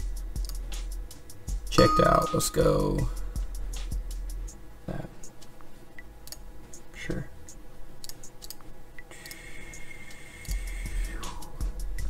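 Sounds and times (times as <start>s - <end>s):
deep bass: 0.0s - 4.5s
music with ticking beat: 0.0s - 4.6s, 5.2s - 12.0s
held high synth note: 1.8s - 3.0s.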